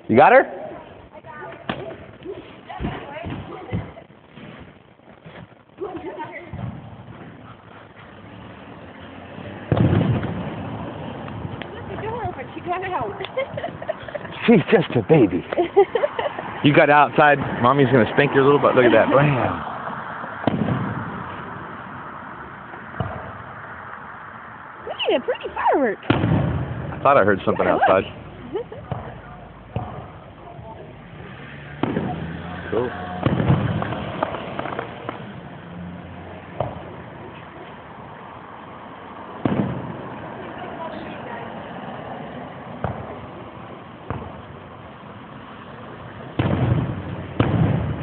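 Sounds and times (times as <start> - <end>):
fireworks booming: 1.5 - 24.1, 25.4 - 35.6, 39.4 - 40.3, 42.7 - 45.1, 46.3 - 48.0.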